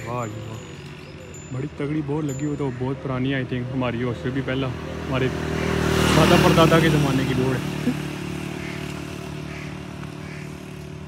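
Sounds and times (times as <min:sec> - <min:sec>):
motorcycle engine at low revs: 0:03.4 - 0:11.0.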